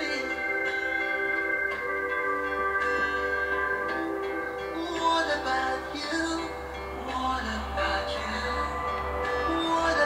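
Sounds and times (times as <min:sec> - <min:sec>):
background music with ringing notes: 0:00.0 - 0:10.0.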